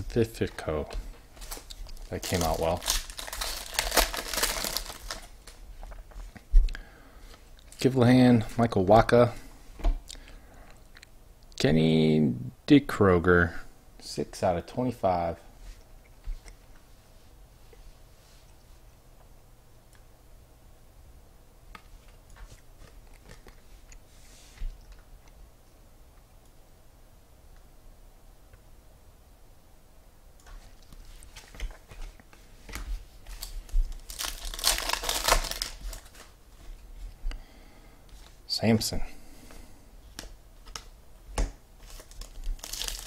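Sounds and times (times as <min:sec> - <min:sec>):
foil wrapper crinkling and tearing: 0:01.4 - 0:05.6, 0:33.3 - 0:36.4, 0:41.8 - 0:43.0
cards shuffling: 0:32.7 - 0:36.7, 0:41.8 - 0:43.0.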